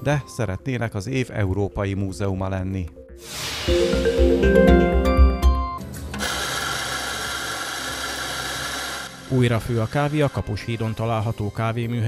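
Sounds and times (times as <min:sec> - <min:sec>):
news jingle: 0:03.7 - 0:05.9
espresso grinder grinding coffee: 0:06.2 - 0:10.6.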